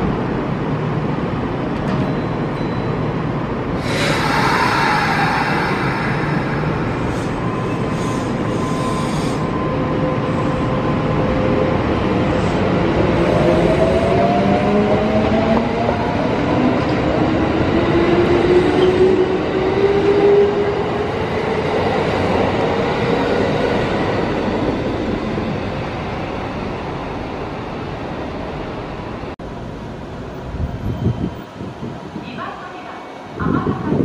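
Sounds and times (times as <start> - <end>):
train wheels on rails: 3.8 - 27.8.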